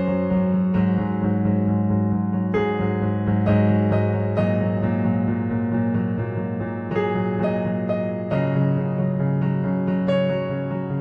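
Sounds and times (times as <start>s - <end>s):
solo piano chords: 0.0s - 11.0s.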